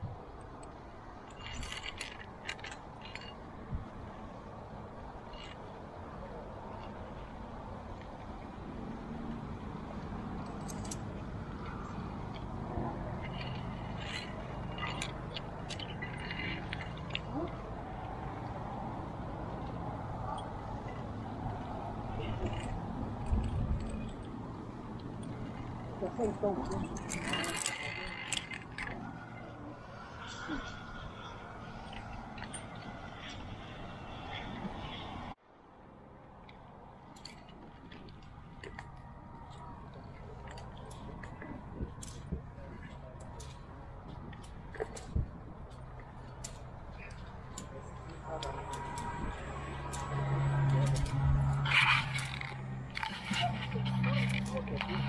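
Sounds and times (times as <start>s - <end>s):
carabiners clinking on metal: 0.4s - 4.2s, 4.9s - 7.2s, 9.9s - 35.1s, 37.1s - 55.0s.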